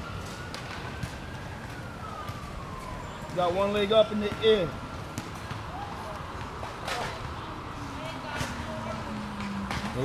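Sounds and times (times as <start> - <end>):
siren wailing: 0.0 - 5.0
street noise: 0.0 - 10.0.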